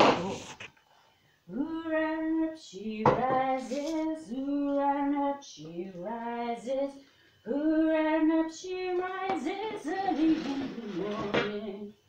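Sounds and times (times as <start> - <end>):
woman singing unaccompanied: 1.5 - 12.0.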